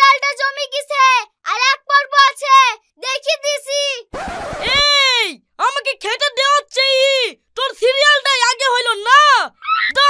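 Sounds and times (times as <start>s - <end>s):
child speaking rapidly: 0.0s - 10.0s
brief rushing noise: 4.1s - 5.0s
long falling cry: 9.6s - 10.0s.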